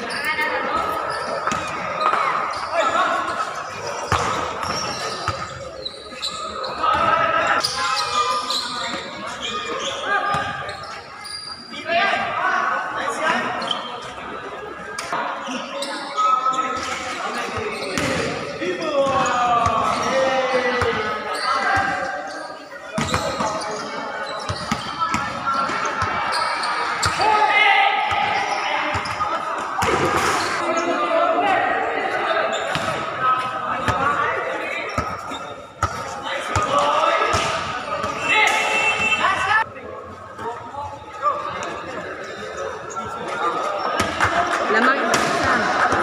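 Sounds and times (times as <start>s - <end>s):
players shouting: 17.2s - 39.7s
basketball bouncing on court floor: 18.0s - 18.3s.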